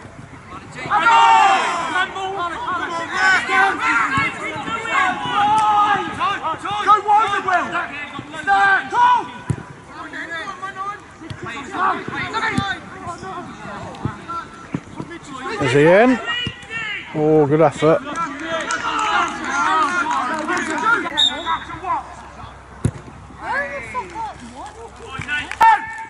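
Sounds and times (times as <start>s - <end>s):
men shouting: 0.8s - 9.4s
ball being kicked: 22.8s - 23.2s.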